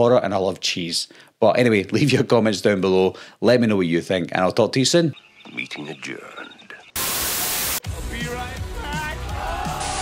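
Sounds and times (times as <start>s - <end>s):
television static hiss: 5.7s - 7.8s.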